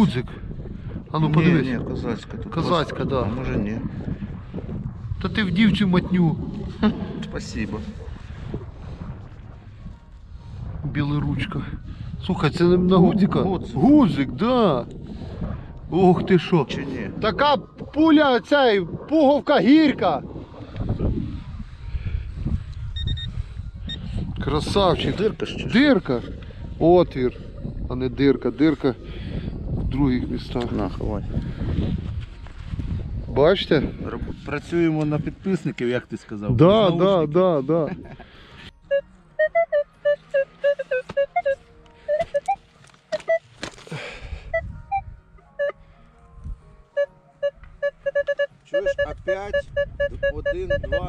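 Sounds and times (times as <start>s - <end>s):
wind rumbling on microphone: 0.0s - 39.1s, 44.0s - 45.3s, 47.6s - 51.0s
metal detector beeps: 22.9s - 23.3s, 23.9s - 24.1s, 38.8s - 43.5s, 44.5s - 45.8s, 47.0s - 51.0s.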